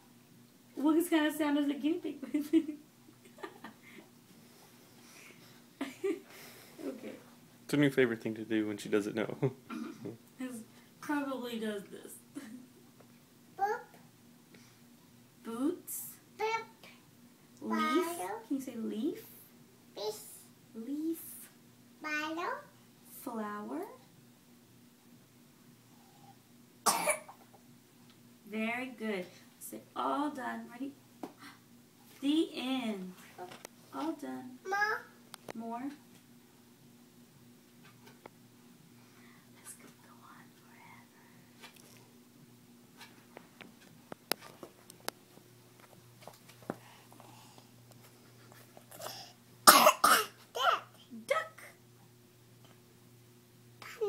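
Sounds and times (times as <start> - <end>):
person coughing: 9.7 - 10.1, 26.9 - 27.4, 49.0 - 50.4.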